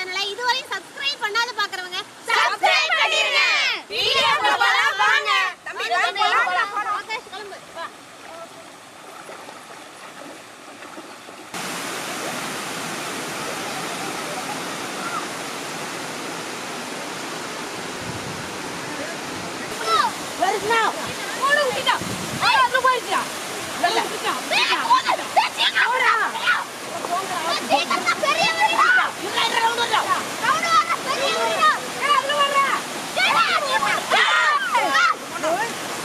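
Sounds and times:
water rushing over weir: 0.0 - 36.0.

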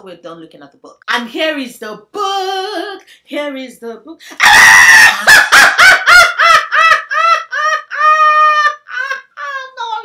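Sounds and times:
woman laughing heartily: 4.9 - 9.9.

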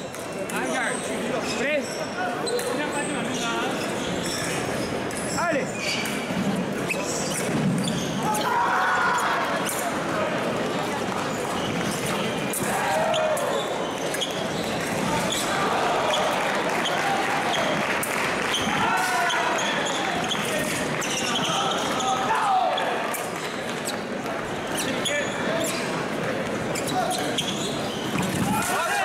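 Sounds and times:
loud shout: 8.2 - 9.6, 12.6 - 13.7, 18.6 - 20.2, 21.4 - 23.0, 28.4 - 29.0.

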